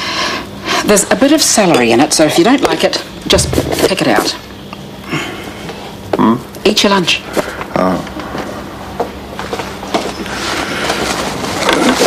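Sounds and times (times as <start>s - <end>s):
food wrapping rustling: 9.4s - 12.0s.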